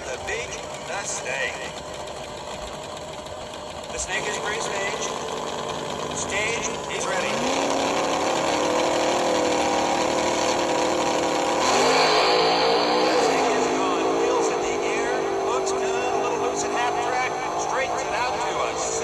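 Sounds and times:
engine through small speaker: 0.0s - 19.0s.

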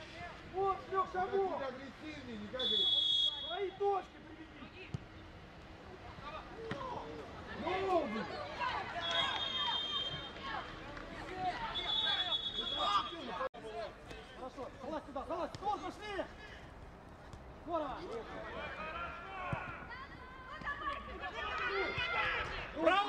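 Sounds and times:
referee's whistle: 2.6s - 3.7s, 9.0s - 10.4s, 11.7s - 13.4s
players shouting: 6.2s - 13.5s, 17.7s - 23.0s.

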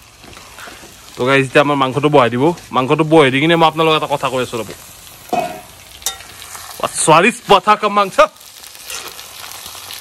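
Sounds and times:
meat sizzling in a wok: 0.0s - 10.0s.

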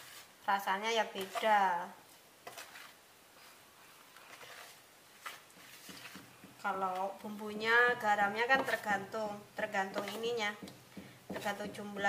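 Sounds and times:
hands kneading sticky dough: 0.0s - 12.0s.

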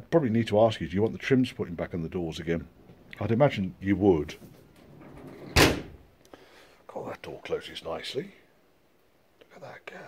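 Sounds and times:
car door slamming: 5.6s - 6.0s.

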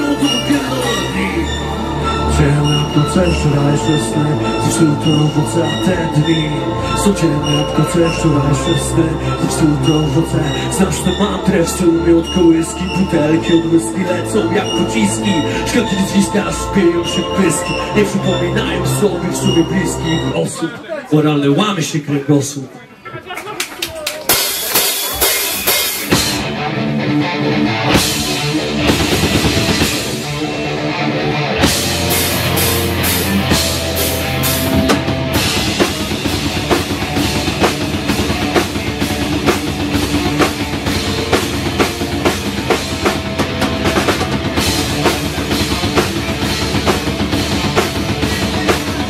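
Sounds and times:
rock band playing: 0.0s - 20.6s, 24.1s - 49.0s
drum and cymbal hits: 24.3s - 26.6s, 27.9s - 30.6s, 31.6s - 49.0s.

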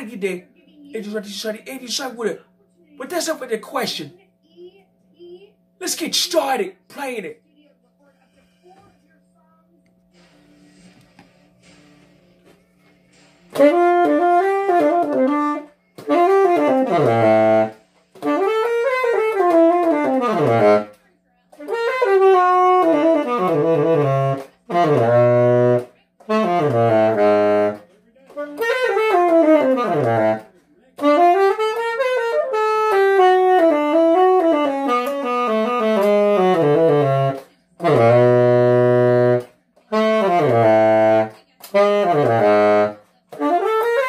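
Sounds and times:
tenor saxophone solo: 13.5s - 21.0s, 21.6s - 27.8s, 28.4s - 44.0s.

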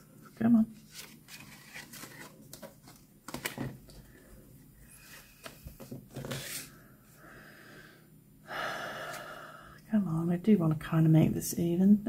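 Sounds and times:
paper tag rustling: 0.8s - 4.0s
breathy exhale: 6.7s - 9.8s.

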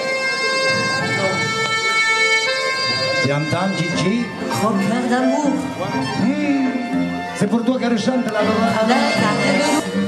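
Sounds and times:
instrumental music with held notes: 0.0s - 10.0s.

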